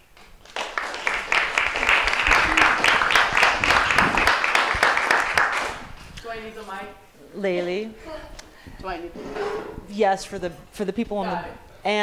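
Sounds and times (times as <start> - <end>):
audience applauding: 0.2 - 5.9.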